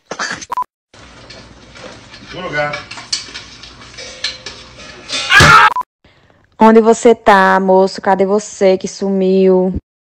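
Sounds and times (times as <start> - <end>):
pot and utensils clattering: 1.0 - 5.3.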